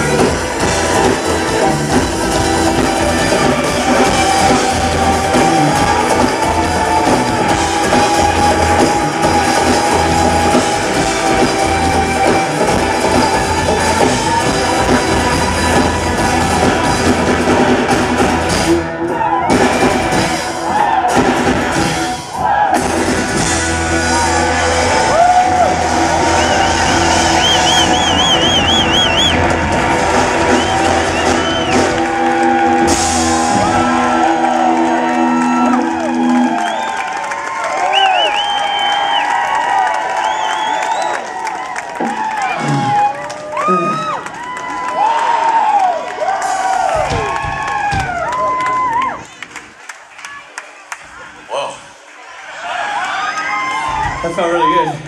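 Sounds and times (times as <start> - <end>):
live rock band playing: 0.0 - 38.0
crowd cheering and whooping: 0.0 - 51.5, 52.1 - 55.0.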